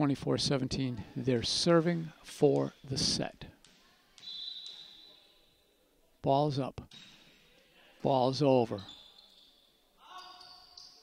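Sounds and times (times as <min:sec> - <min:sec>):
referee's whistle blast: 0:04.2 - 0:05.2.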